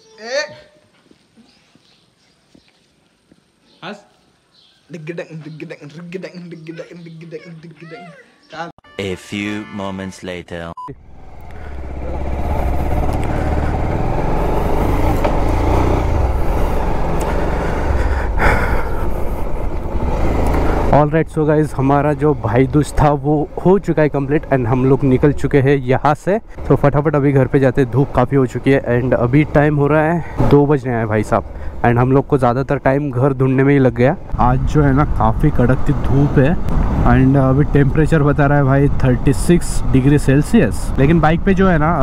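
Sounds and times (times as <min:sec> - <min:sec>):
motorcycle engine rumbling: 0:10.9 - 0:42.0.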